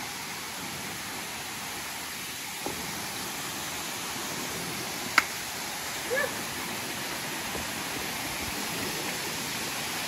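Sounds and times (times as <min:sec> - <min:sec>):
stream rushing over boulders: 0:00.0 - 0:10.0.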